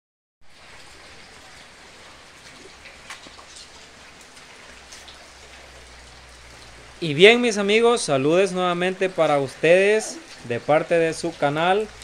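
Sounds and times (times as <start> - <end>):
steady rain hiss: 0.5 - 12.0.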